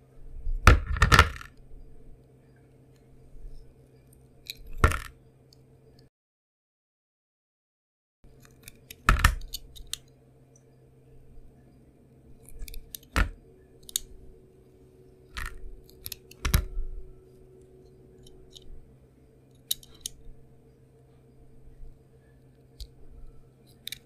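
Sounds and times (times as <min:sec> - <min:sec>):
faint steady hum: 0:00.0 - 0:06.1, 0:08.2 - 0:24.0.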